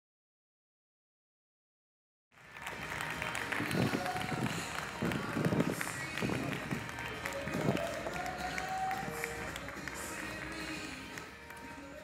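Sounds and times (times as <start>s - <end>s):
audience applauding: 2.3s - 12.0s
music: 2.3s - 12.0s.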